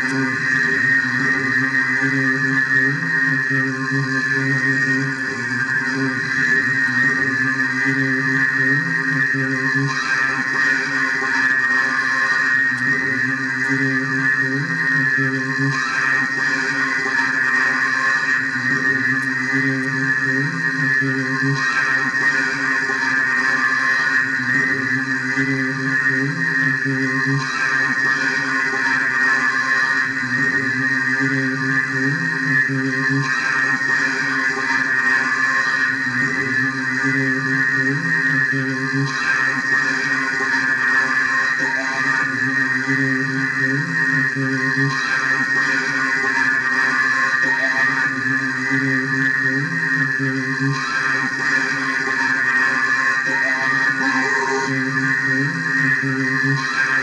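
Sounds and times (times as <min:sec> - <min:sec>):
layered voice drone: 0:00.0 - 0:57.0.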